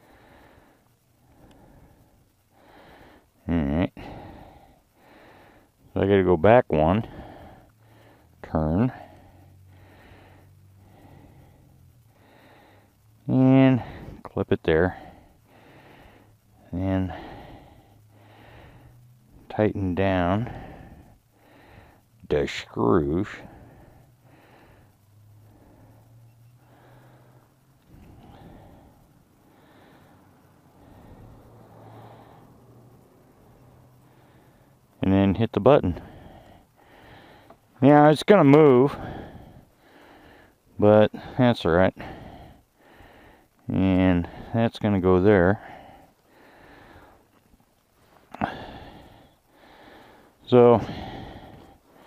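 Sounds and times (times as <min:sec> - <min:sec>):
soft breathing: 0:00.0 - 0:06.0, 0:06.9 - 0:52.0
low steady hum: 0:00.0 - 0:52.0.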